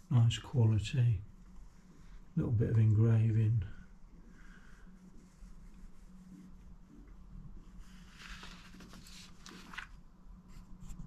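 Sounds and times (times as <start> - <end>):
low steady hum: 0.0 - 11.0
soft rustling and handling noise: 0.1 - 11.0.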